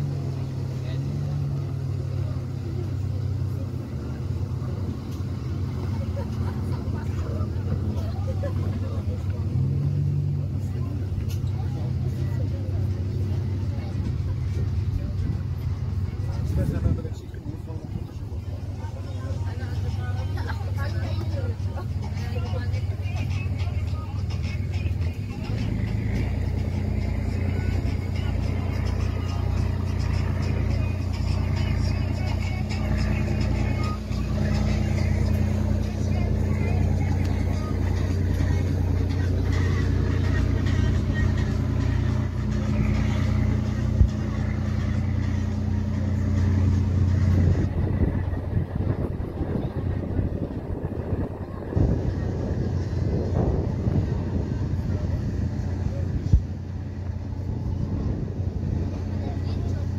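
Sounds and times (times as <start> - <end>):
motor engine running: 0.0 - 59.9.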